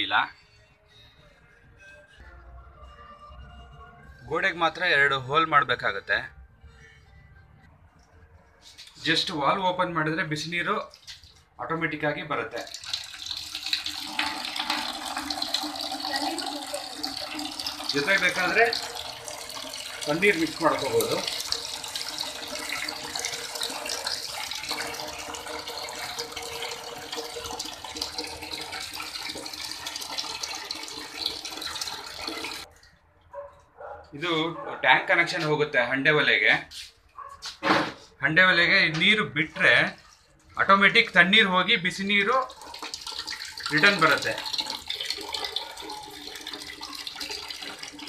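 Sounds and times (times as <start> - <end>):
water running from valve: 12.2 - 32.7, 42.0 - 48.0.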